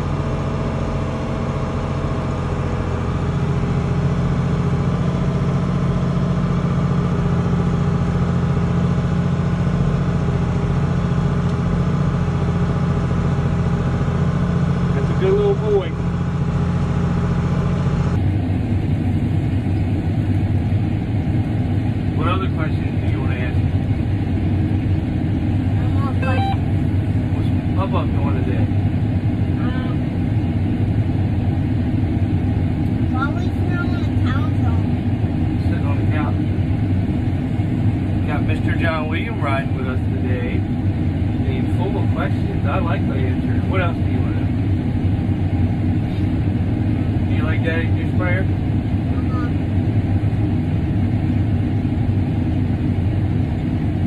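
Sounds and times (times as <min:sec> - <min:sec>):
low tractor engine drone: 0:00.0 - 0:54.0
vehicle engine running: 0:00.0 - 0:54.0.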